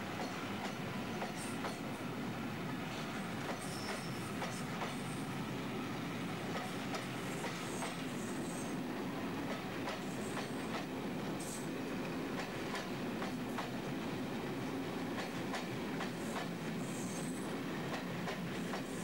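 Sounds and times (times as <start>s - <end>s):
train wheels rumbling on track: 0.0s - 19.0s.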